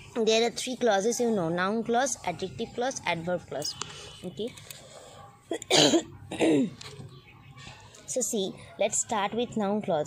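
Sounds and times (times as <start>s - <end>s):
woman coughing: 5.5s - 6.8s.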